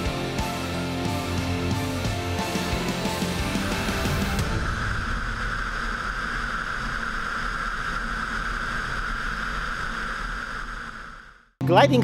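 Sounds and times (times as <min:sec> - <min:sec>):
rushing airflow noise: 0:03.6 - 0:11.3.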